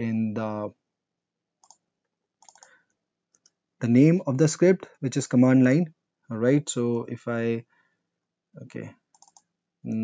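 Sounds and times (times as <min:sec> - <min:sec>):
computer mouse clicks: 0:01.6 - 0:03.6, 0:09.1 - 0:09.5
person speaking: 0:03.8 - 0:07.6, 0:08.6 - 0:09.0.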